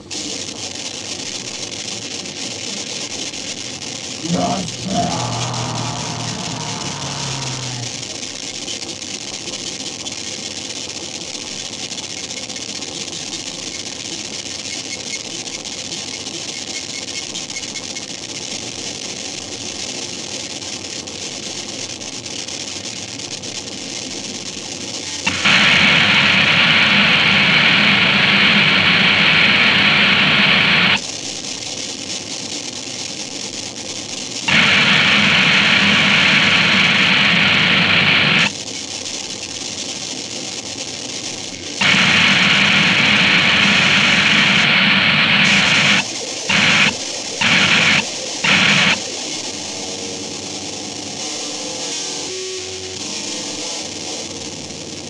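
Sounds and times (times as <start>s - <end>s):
gritty static noise: 0.0s - 55.0s
loud walls of dense noise: 0.0s - 55.0s.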